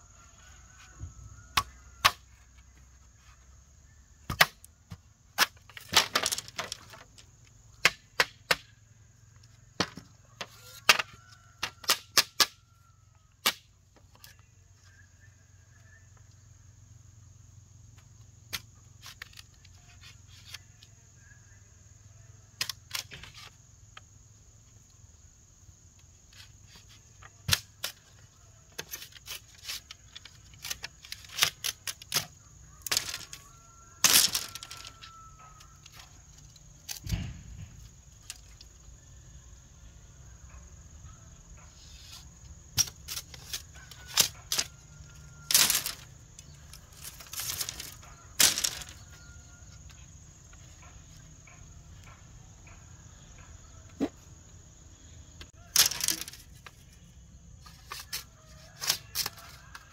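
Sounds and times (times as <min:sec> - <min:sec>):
machete striking bamboo: 0:01.5 - 0:02.3, 0:04.2 - 0:06.8, 0:07.8 - 0:08.7, 0:10.8 - 0:12.6, 0:13.4 - 0:13.7, 0:27.4 - 0:28.0, 0:42.8 - 0:44.7.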